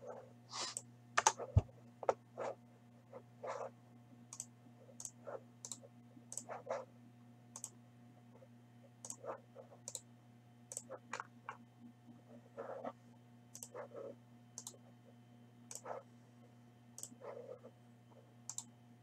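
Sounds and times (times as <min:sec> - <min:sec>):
faint electrical hum: 0:00.0 - 0:19.0
mouse and keyboard clicks: 0:04.3 - 0:06.5, 0:10.7 - 0:11.3, 0:13.6 - 0:13.8.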